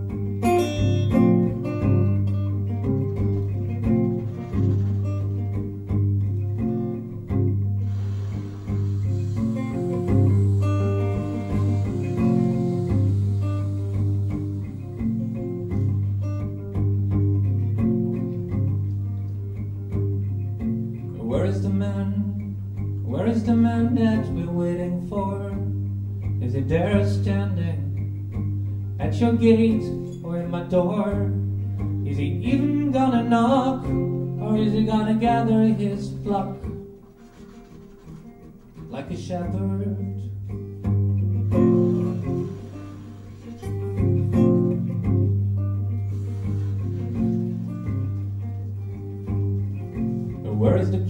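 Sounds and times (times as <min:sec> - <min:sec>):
bass guitar line: 0:00.0 - 0:51.0
guitar: 0:00.0 - 0:51.0.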